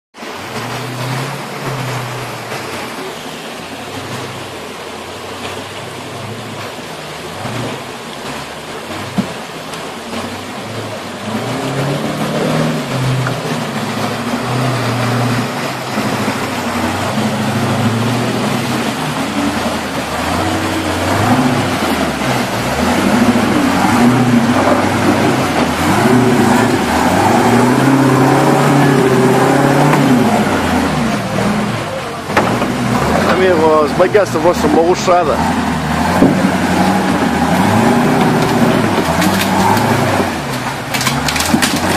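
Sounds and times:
off-road vehicle engine revving: 0:00.2 - 0:41.9.

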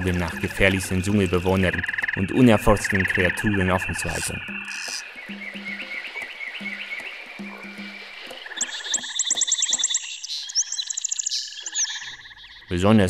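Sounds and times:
frogs croaking: 0:00.0 - 0:13.0
high chirping calls: 0:00.0 - 0:13.0.

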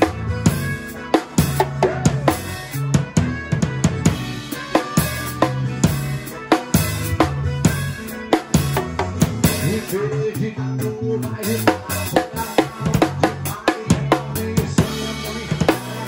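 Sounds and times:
bass guitar: 0:00.0 - 0:16.0
drum kit groove: 0:00.0 - 0:16.0.

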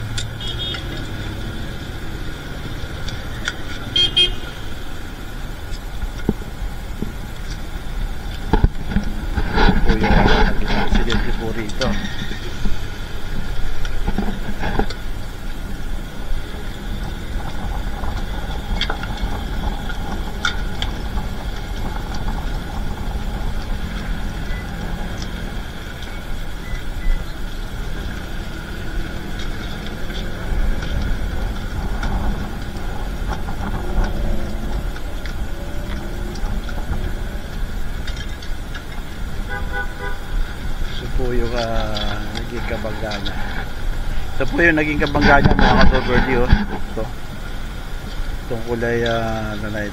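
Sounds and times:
faint steady whining tones: 0:00.0 - 0:49.9
road traffic rumble: 0:00.0 - 0:49.9.

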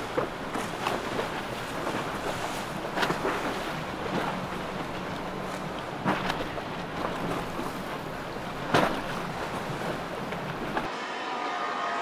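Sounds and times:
boat and water noise: 0:00.0 - 0:12.0.

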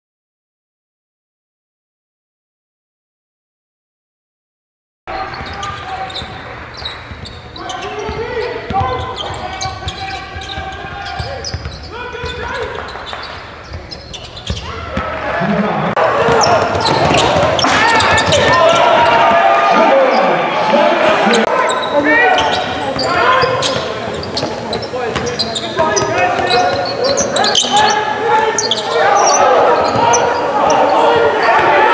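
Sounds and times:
sneakers squeaking on court: 0:05.1 - 0:15.0, 0:16.1 - 0:19.4, 0:21.3 - 0:31.9
players calling out: 0:05.1 - 0:31.9
basketball dribbling: 0:05.2 - 0:14.6, 0:16.2 - 0:19.5, 0:22.4 - 0:28.0
basketball bouncing: 0:16.1 - 0:19.5, 0:22.4 - 0:26.9.

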